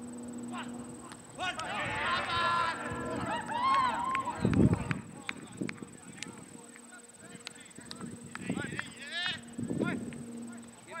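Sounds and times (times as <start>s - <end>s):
faint high whine: 0.0s - 11.0s
players shouting: 0.6s - 5.3s
sharp clicks: 3.7s - 9.4s.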